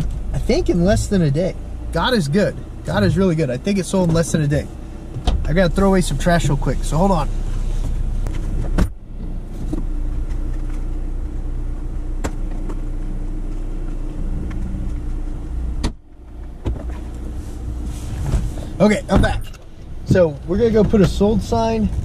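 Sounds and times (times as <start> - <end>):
car engine humming: 0.0 - 22.0
car door shutting: 3.8 - 6.6, 7.4 - 10.9, 12.2 - 12.9, 14.3 - 22.0
car door thump: 5.1 - 5.6, 8.3 - 9.0, 15.8 - 17.1, 18.2 - 19.6.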